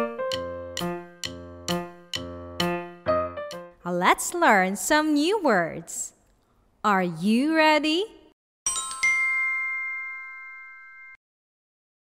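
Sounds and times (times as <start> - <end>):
bell-like chime: 8.7 - 11.2.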